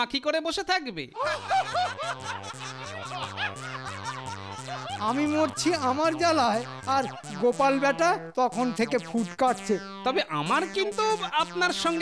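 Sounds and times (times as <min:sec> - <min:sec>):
comic background music: 0:01.3 - 0:12.0.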